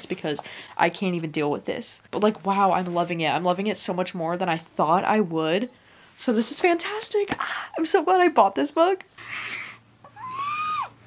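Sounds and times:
woman's high-pitched squeal: 0:10.1 - 0:11.0.

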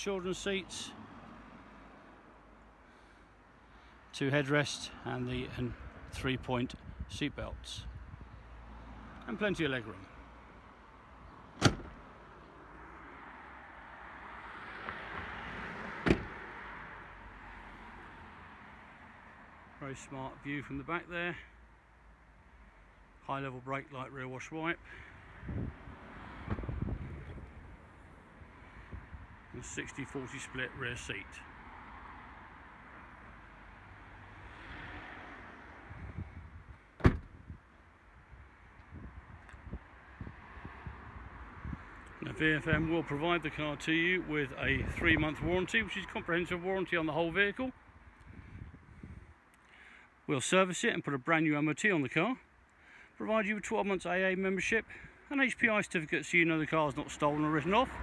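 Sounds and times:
car door shutting: 0:11.6 - 0:12.0, 0:16.0 - 0:16.4, 0:37.0 - 0:37.4.

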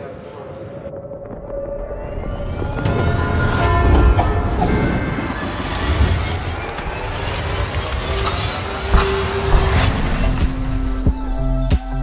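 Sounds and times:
train whining tones: 0:01.4 - 0:11.5
train rumble: 0:02.8 - 0:11.6.

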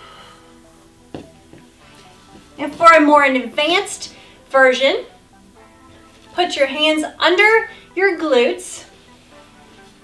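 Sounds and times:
soft music of held tones: 0:00.0 - 0:10.0.

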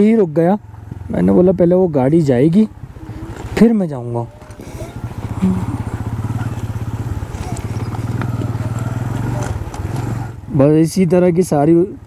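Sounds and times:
motorcycle engine at low revs: 0:00.0 - 0:12.0.

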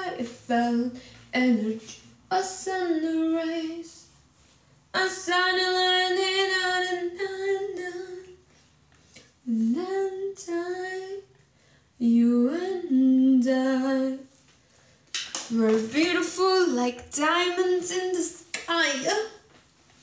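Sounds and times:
woman singing unaccompanied: 0:00.0 - 0:04.1, 0:05.0 - 0:08.4, 0:09.4 - 0:11.4, 0:12.0 - 0:14.3, 0:15.5 - 0:19.4.

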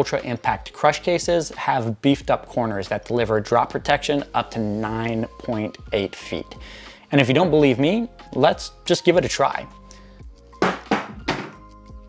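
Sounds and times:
background music: 0:00.0 - 0:12.0
phone thudding on wooden floor: 0:10.6 - 0:11.6.

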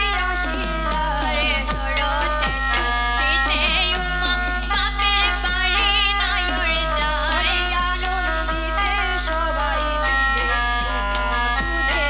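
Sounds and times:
drum beats: 0:00.0 - 0:12.0
held instrumental tones: 0:00.0 - 0:12.0
women singing through a microphone: 0:00.0 - 0:12.0.

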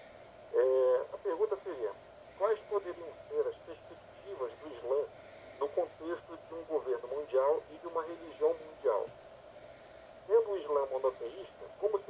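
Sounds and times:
man talking over telephone: 0:00.5 - 0:09.1, 0:10.3 - 0:12.0.

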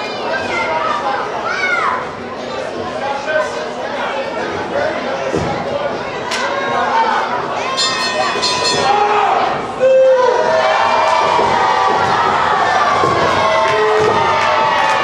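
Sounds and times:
crowd cheering and shouting: 0:06.3 - 0:15.0.

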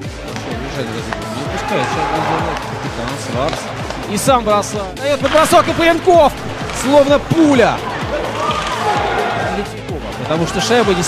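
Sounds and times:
background music: 0:00.0 - 0:11.0
faint arena sound: 0:00.0 - 0:11.0.

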